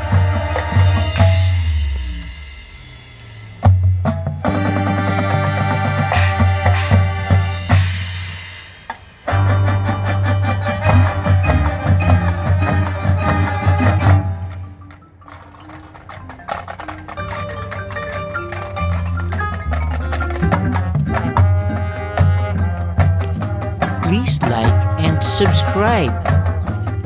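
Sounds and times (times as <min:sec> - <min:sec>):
marching band playing: 0:24.0 - 0:26.3.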